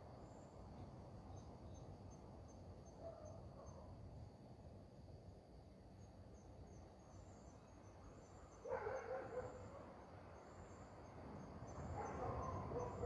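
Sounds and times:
crickets chirping: 0.0 - 13.0.

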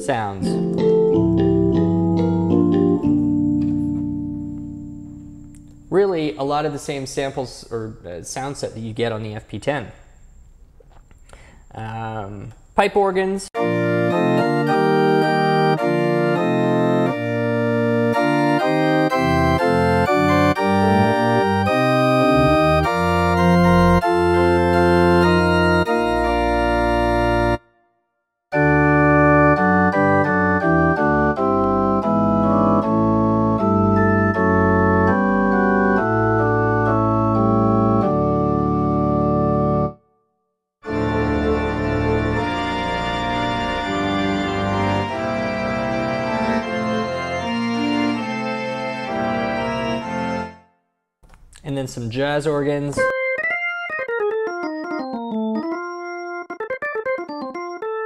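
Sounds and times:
organ chords: 0.0 - 27.7, 28.5 - 40.1, 40.8 - 50.7, 51.3 - 58.0.

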